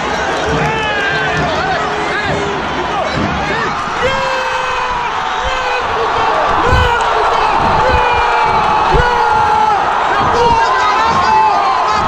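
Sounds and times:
fans shouting loudly: 0:00.0 - 0:12.0
stadium crowd cheering: 0:00.0 - 0:12.0
dull thumps: 0:05.0 - 0:11.3.

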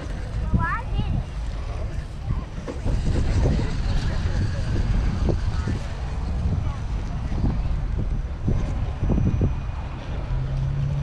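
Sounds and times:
faint voices: 0:00.0 - 0:11.0
wind buffeting microphone: 0:00.0 - 0:11.0.

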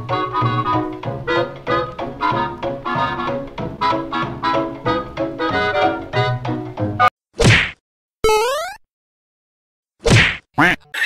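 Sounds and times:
upbeat brass swing music: 0:00.0 - 0:06.7
short whack sound effect: 0:07.4 - 0:07.8, 0:10.0 - 0:10.5.

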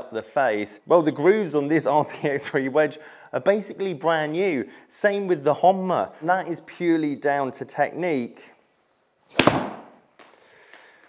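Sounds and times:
ball hitting impact screen: 0:09.3 - 0:10.0
golf club striking ball: 0:09.3 - 0:10.0.

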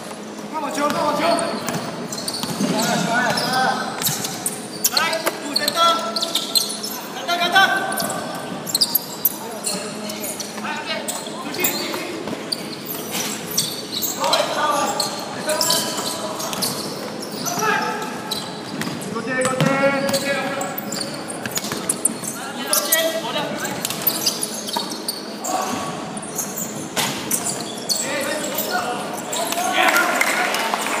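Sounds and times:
ball bouncing on wooden court: 0:01.6 - 0:04.4, 0:18.7 - 0:20.3.

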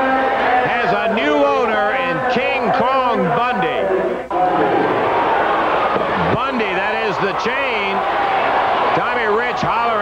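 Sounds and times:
man talking loudly: 0:00.6 - 0:04.1, 0:06.2 - 0:08.0, 0:08.9 - 0:10.0.

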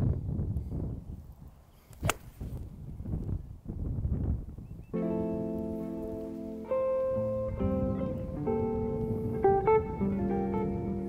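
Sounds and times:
wind gusts on microphone: 0:00.0 - 0:11.0
guitar music: 0:05.0 - 0:11.0.

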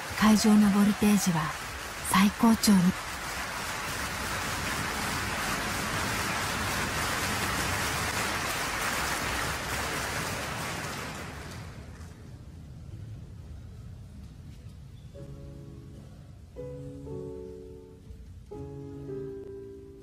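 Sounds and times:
audience applauding: 0:00.0 - 0:12.2.

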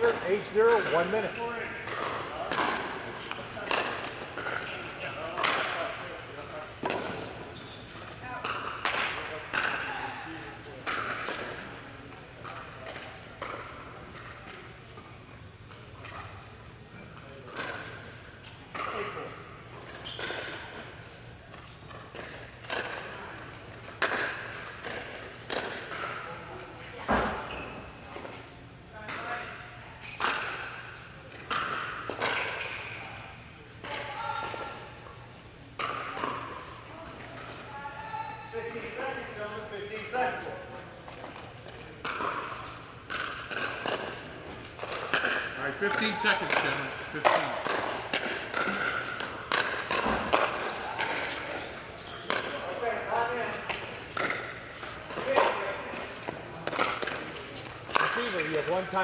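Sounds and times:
ball bouncing on court: 0:41.2 - 0:52.8.

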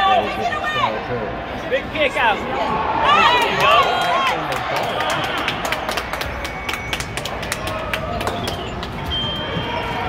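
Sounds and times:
spectator chatter: 0:00.0 - 0:10.0.

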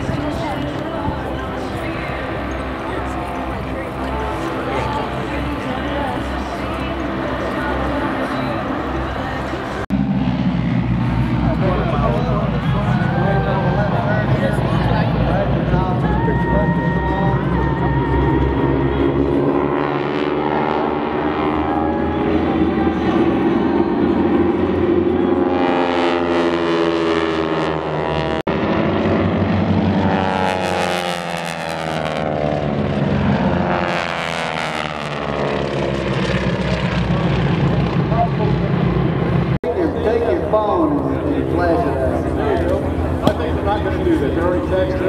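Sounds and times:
propeller planes droning overhead: 0:00.0 - 0:45.0.

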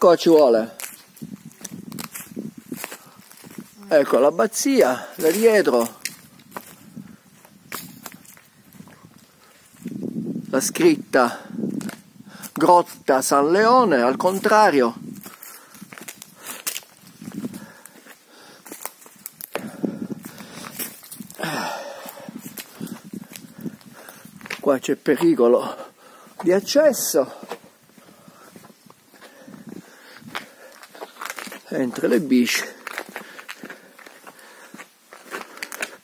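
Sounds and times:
footsteps crunching over dry leaves: 0:00.1 - 0:10.7, 0:11.6 - 0:36.0.

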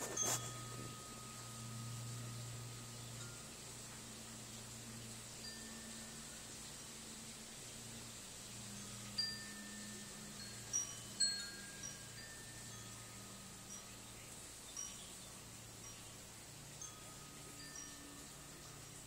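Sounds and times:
chimes ringing: 0:00.0 - 0:04.1, 0:08.7 - 0:19.0.

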